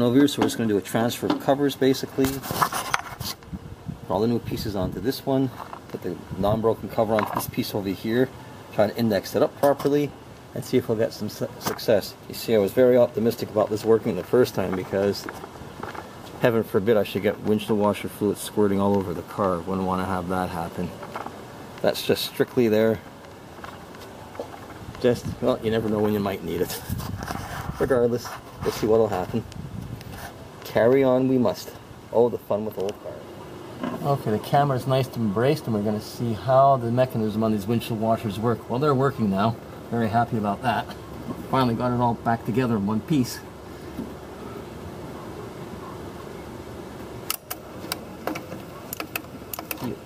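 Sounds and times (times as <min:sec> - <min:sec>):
low steady background noise: 0:00.0 - 0:50.0
washer pump clicking: 0:47.3 - 0:49.9.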